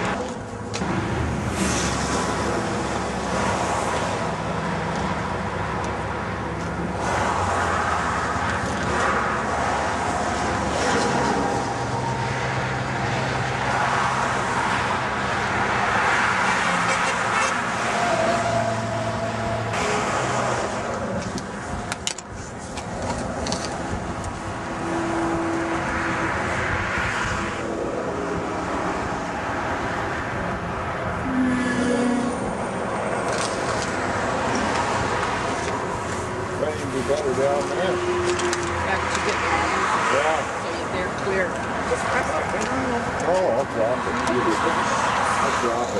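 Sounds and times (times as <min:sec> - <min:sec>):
road traffic passing: 0:00.0 - 0:45.9.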